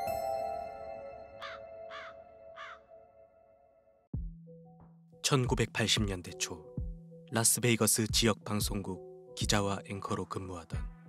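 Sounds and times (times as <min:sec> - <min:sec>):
bell-like chime chord: 0:00.0 - 0:01.9
crow cawing: 0:01.4 - 0:02.9.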